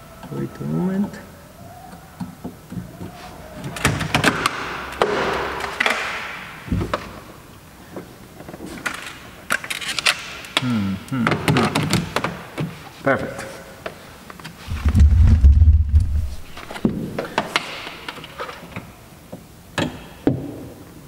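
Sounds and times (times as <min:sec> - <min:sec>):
rustling: 0:14.0 - 0:18.7
dull thump: 0:14.7 - 0:17.1.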